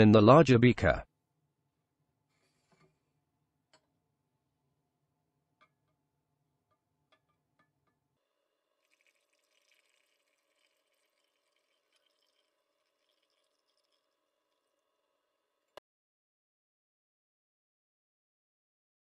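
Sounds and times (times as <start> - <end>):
liquid pouring into glass: 8.7 - 15.3.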